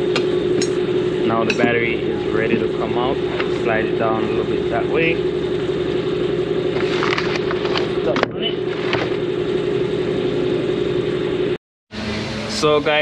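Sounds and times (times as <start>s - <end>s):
steady machine hum: 0.0s - 13.0s
car battery knocking and scraping: 6.7s - 9.2s.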